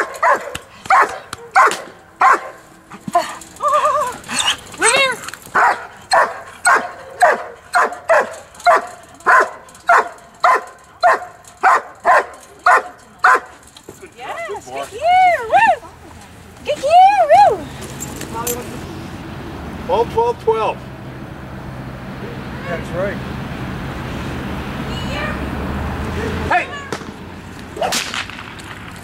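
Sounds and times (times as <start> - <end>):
dog barking: 0.0 - 2.6, 4.4 - 13.6.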